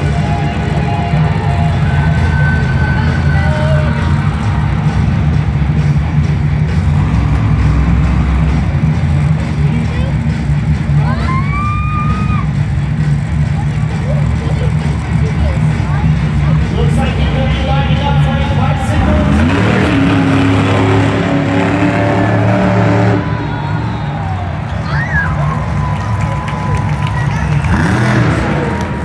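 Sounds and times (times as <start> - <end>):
big crowd noise: 0.0 - 29.0
truck engine rumbling: 0.0 - 29.0.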